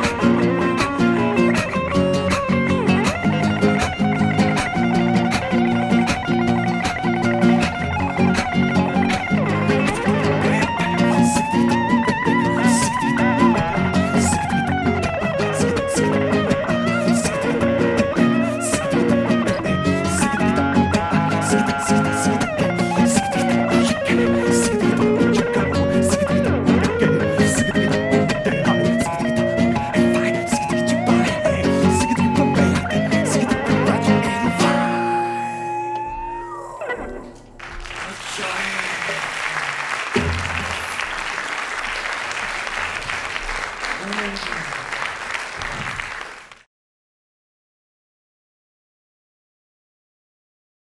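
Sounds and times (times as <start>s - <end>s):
electric guitar lead line: 0.0s - 38.0s, 40.1s - 41.3s
acoustic guitar accompaniment: 0.0s - 45.1s
audience applause: 3.0s - 15.9s, 37.6s - 46.7s
bright percussive accent: 37.2s - 42.2s.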